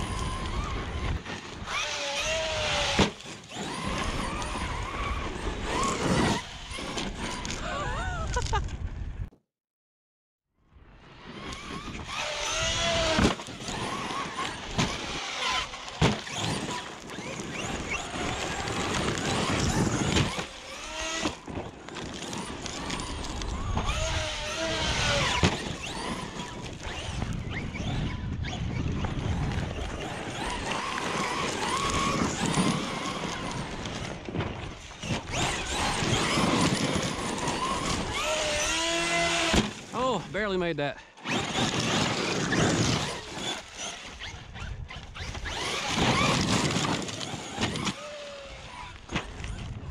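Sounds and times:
electric motor whining: 0.0 - 7.8, 11.3 - 39.9, 41.2 - 49.8.

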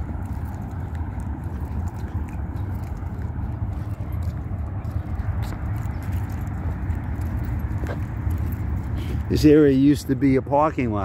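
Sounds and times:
footsteps on asphalt: 0.0 - 11.0
wind buffeting microphone: 0.0 - 11.0.

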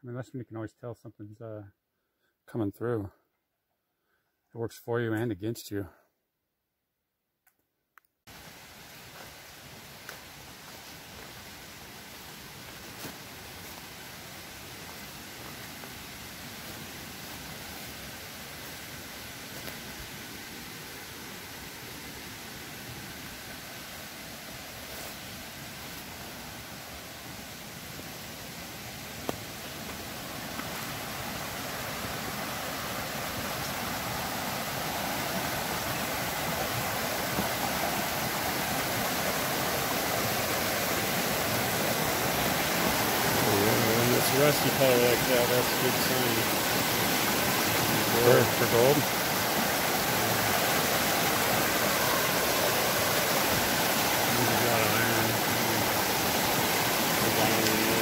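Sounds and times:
creek rushing over rocks: 8.3 - 58.0.

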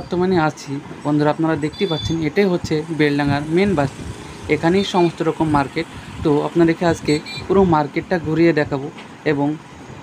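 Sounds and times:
person speaking: 0.0 - 9.7
street traffic: 0.0 - 10.0.

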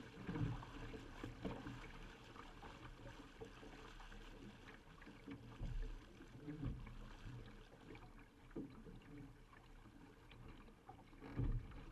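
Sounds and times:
water splashing along hull: 0.0 - 11.9.

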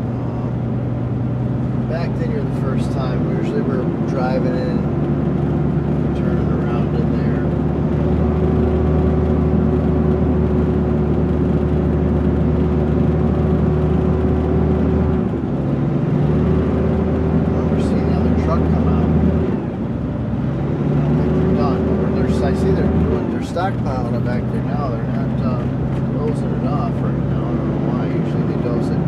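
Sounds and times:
diesel truck engine from cab: 0.0 - 29.0.

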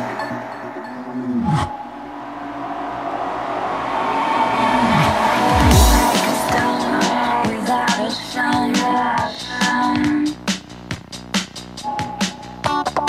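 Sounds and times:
sustained synth lines: 0.0 - 9.5
deep falling pitch sweeps: 1.0 - 8.7
kick drum beat: 5.6 - 6.1.

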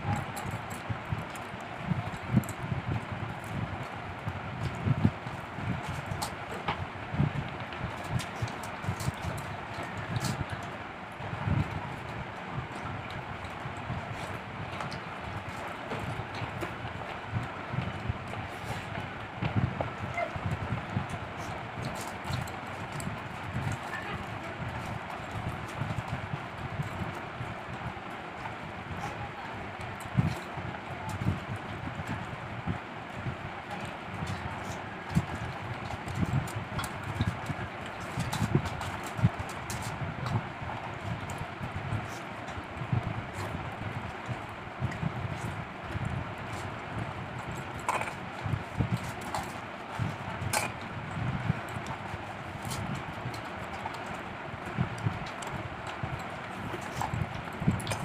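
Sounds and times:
people chewing: 33.6 - 58.0
chewing: 47.4 - 50.9, 55.2 - 58.0.

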